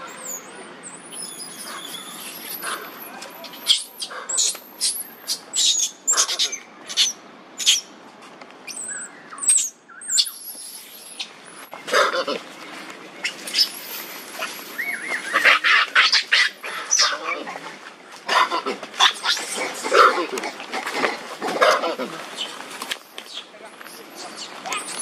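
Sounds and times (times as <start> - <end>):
baby monkey squealing cries: 1.1 - 7.8.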